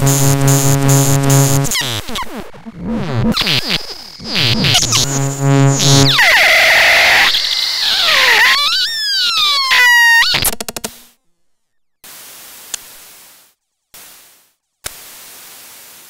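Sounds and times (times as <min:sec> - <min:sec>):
modular synthesizer noise music: 0:00.0 - 0:08.1
faint hiss: 0:12.0 - 0:16.0.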